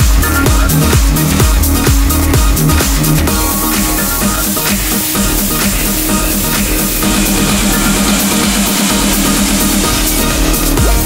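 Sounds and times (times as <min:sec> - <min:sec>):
vocal trance music: 0:00.0 - 0:11.0.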